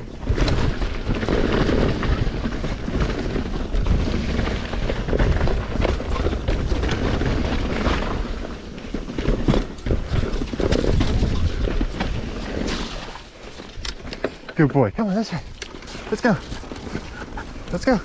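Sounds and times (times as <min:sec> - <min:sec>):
bike rattling over bumps: 0:00.0 - 0:18.0
tyres crunching over dirt: 0:00.0 - 0:18.0.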